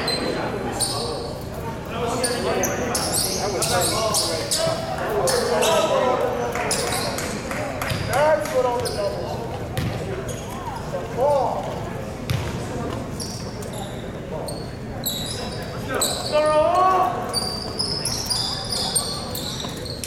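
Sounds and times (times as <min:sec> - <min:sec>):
sneakers squeaking on hardwood: 0:08.8 - 0:09.2, 0:13.2 - 0:16.4, 0:17.3 - 0:20.0.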